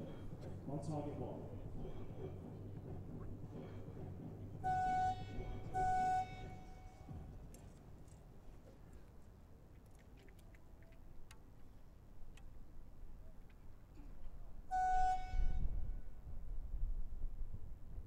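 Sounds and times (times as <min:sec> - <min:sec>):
signal horn blasts: 0:04.6 - 0:07.2, 0:14.7 - 0:16.2
faint clicks: 0:09.7 - 0:11.7.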